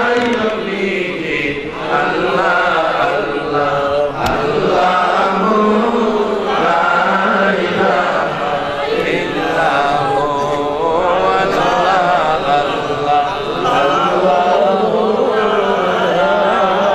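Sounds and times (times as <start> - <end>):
men chanting together: 0.0 - 16.9
sharp click: 0.1 - 0.7.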